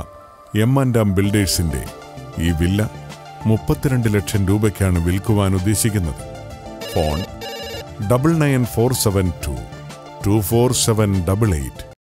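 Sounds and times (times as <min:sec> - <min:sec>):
soft background music: 0:00.0 - 0:12.0
telephone ringing: 0:06.8 - 0:08.0.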